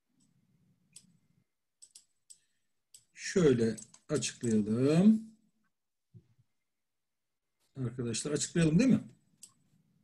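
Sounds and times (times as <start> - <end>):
computer mouse clicks: 0.2 - 1.2, 1.8 - 4.6, 9.4 - 9.6.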